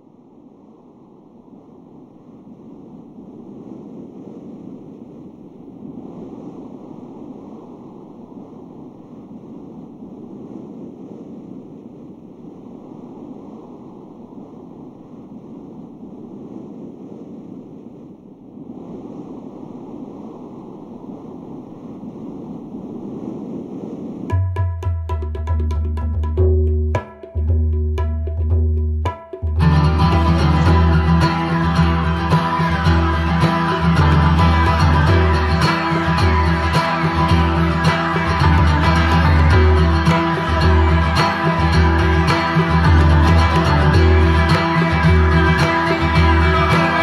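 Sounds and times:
ocean waves rushing: 0.0s - 24.6s, 29.0s - 47.0s.

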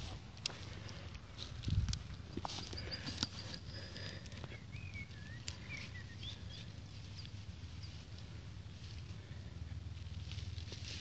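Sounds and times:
grass rustling and crackling: 0.0s - 11.0s
faint bird chirps: 2.7s - 8.2s.

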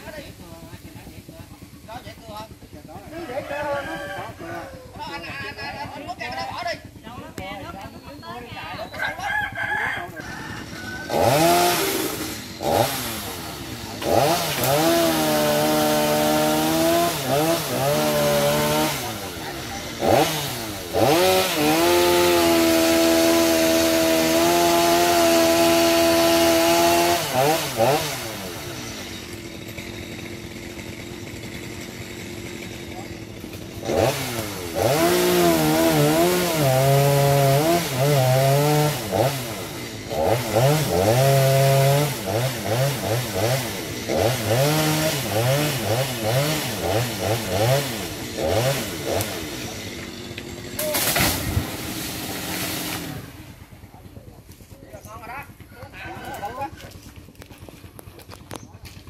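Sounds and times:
chainsaw revving: 9.2s - 59.0s.

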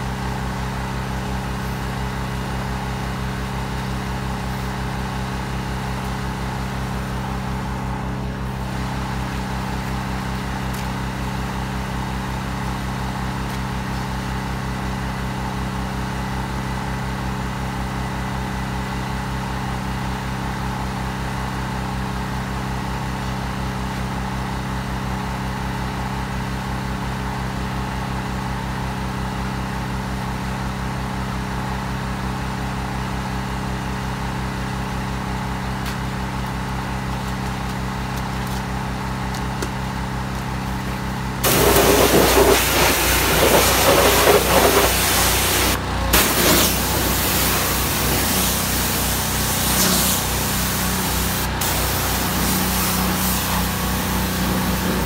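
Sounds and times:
engine idling: 0.0s - 55.0s
loud rushing noise: 41.4s - 48.5s.

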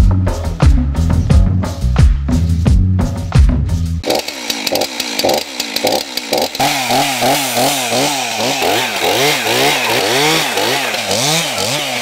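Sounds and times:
chainsaw running: 4.0s - 12.0s.

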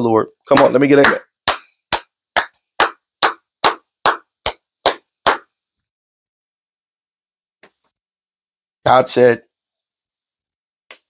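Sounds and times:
person clapping hands: 0.5s - 5.5s.

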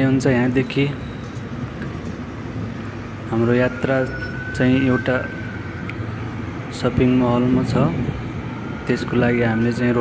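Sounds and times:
street traffic rumble: 0.0s - 10.0s.

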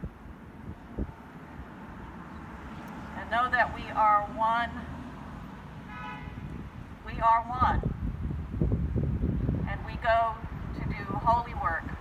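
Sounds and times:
traffic rumble: 0.0s - 12.0s
faint car horn toot: 5.9s - 6.4s.

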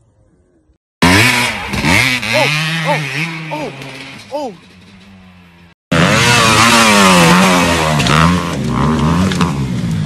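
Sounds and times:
dirt bike engine revving: 1.0s - 10.0s.

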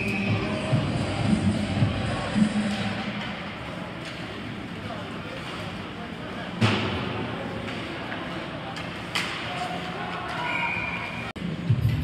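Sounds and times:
ice rink noise: 0.0s - 12.0s.

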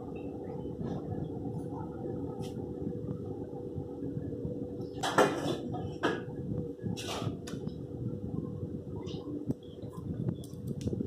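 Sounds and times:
faint constant hum: 0.0s - 11.0s
low background rumble: 0.0s - 11.0s.

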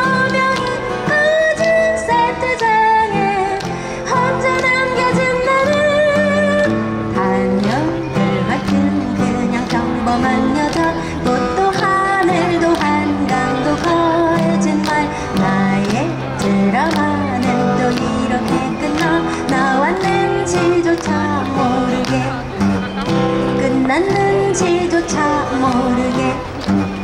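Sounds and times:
woman singing: 0.0s - 22.6s, 23.4s - 26.8s
acoustic guitars strumming: 0.0s - 27.0s.

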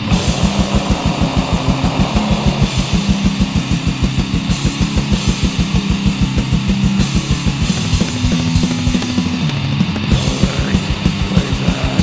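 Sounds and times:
cymbal wash: 0.0s - 9.0s
distorted guitar riff: 0.0s - 12.0s
double-bass kick drums: 0.0s - 12.0s.

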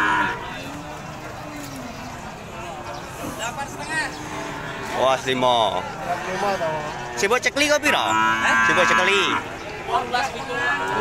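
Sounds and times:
cow mooing: 0.0s - 0.4s, 6.0s - 9.5s, 10.5s - 11.0s
men talking: 0.4s - 11.0s.

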